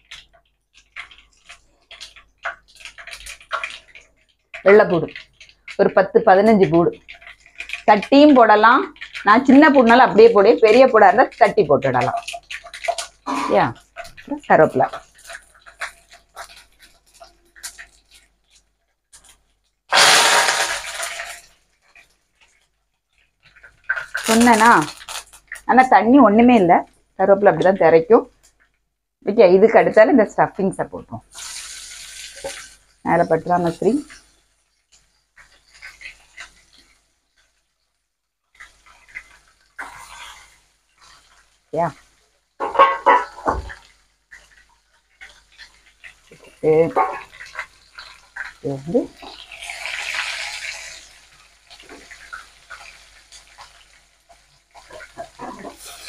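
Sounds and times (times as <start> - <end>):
chillies sizzling in hot oil: 0.0 - 56.0.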